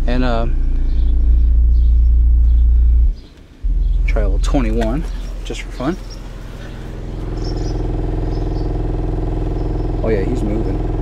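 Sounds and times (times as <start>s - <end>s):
subwoofer low test tone drone: 0.0s - 11.0s.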